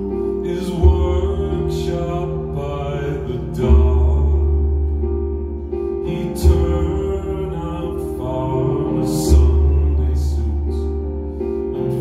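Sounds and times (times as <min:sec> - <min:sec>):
cellos and double bass playing: 0:00.0 - 0:12.0.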